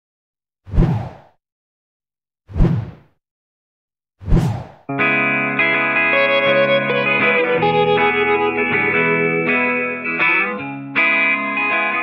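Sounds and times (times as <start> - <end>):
whoosh swish: 0.7 - 1.4, 2.5 - 3.1, 4.2 - 4.9.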